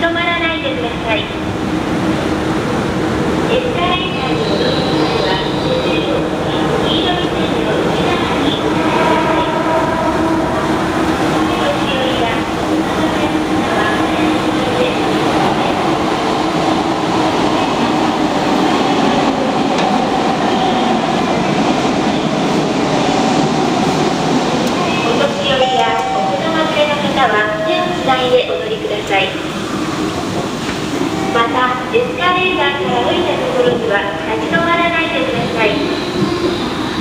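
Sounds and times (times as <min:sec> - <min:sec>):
recorded voice announcement: 0:00.0 - 0:01.4, 0:03.5 - 0:09.8, 0:11.4 - 0:15.9, 0:24.7 - 0:29.5, 0:31.2 - 0:36.1.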